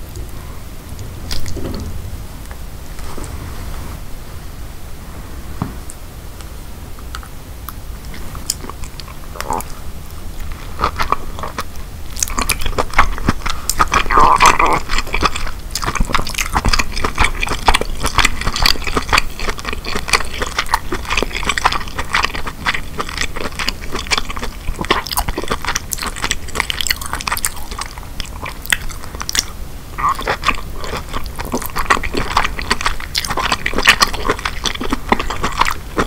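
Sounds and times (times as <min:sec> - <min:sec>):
wet chewing and mouth clicks: 0:07.1 - 0:36.0.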